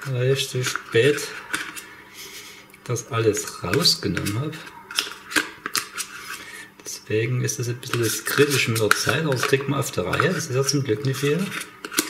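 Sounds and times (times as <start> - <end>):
spoon scraping plastic tub: 0.0 - 2.4, 3.3 - 7.0, 7.6 - 12.0.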